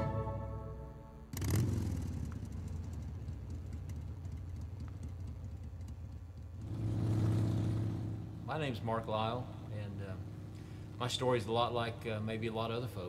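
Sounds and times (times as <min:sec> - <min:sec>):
motorcycle engine accelerating: 0:00.0 - 0:08.5, 0:09.4 - 0:11.2.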